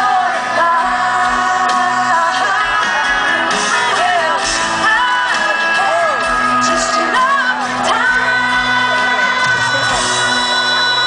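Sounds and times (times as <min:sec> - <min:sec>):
country-pop band playing live: 0:00.0 - 0:11.0
woman singing: 0:00.0 - 0:11.0.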